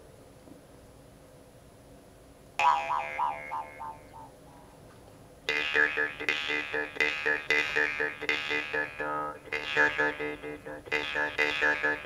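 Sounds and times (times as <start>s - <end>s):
jaw harp plucking: 2.6s - 4.4s, 5.5s - 12.0s.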